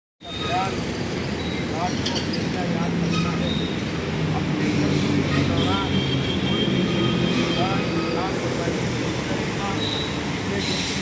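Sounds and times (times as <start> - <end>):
man speaking: 0.2 - 0.8, 1.7 - 11.0
road traffic rumble: 0.2 - 11.0.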